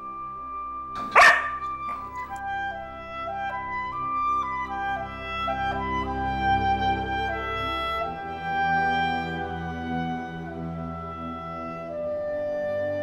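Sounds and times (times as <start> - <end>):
orchestral music with flute and strings: 0.0 - 13.0
dog barking: 1.0 - 2.4.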